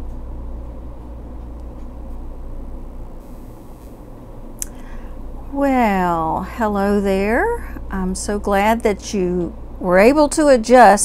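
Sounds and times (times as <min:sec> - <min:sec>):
low background hum with hiss: 0:00.0 - 0:11.0.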